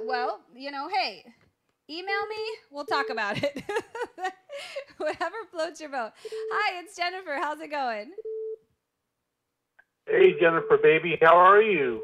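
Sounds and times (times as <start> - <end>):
telephone beep: 6.2 - 6.7, 8.2 - 8.6, 10.3 - 11.0.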